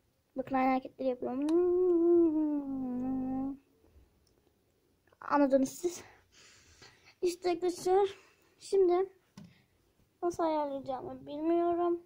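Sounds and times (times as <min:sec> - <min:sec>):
person holding a vocal note: 0:01.5 - 0:03.6.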